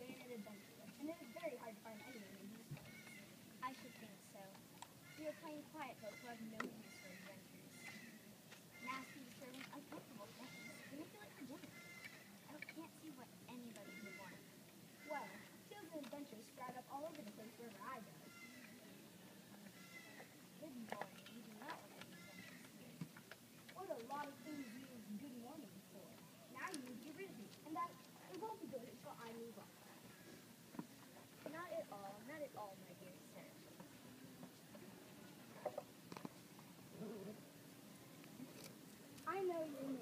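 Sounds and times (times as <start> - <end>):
faint voices: 0.0 - 36.0.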